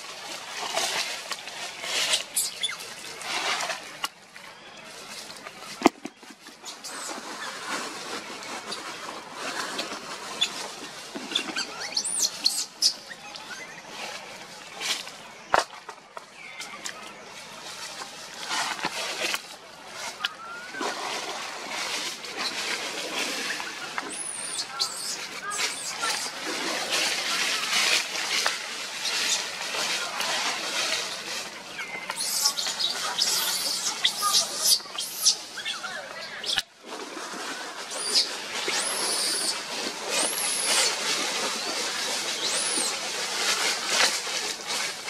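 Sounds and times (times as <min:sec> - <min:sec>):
dry leaves rustling and crackling: 0:00.0 - 0:45.0.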